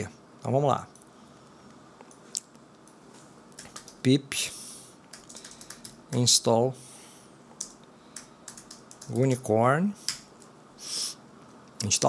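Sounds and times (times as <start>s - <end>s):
computer keyboard key clicks: 3.6s - 4.0s, 5.1s - 6.2s, 7.6s - 9.4s.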